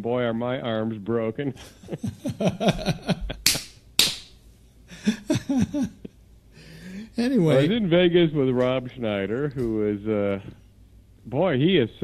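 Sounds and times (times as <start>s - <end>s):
man laughing: 1.6s - 3.6s, 4.9s - 7.7s.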